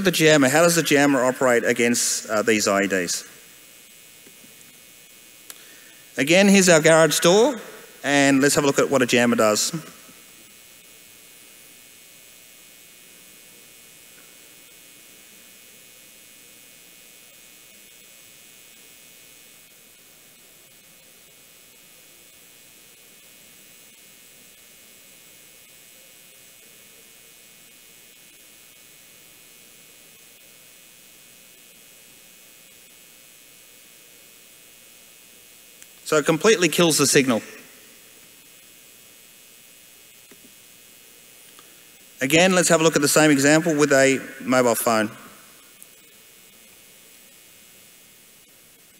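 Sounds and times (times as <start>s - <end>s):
light hum: 0.0s - 48.9s
steady faint hiss: 0.0s - 48.9s.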